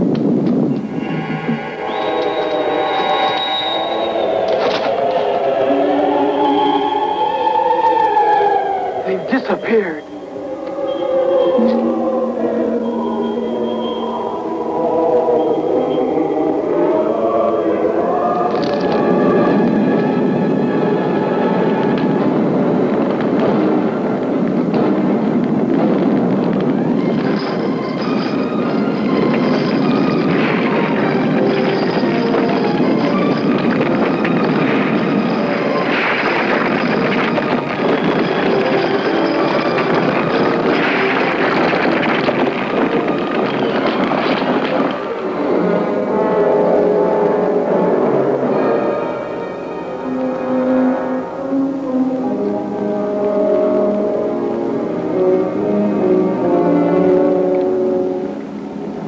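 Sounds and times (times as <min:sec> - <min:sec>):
fire crackling and rushing: 0:00.0 - 0:07.1, 0:18.3 - 0:46.2
orchestral music: 0:00.7 - 0:25.7, 0:26.6 - 0:59.0.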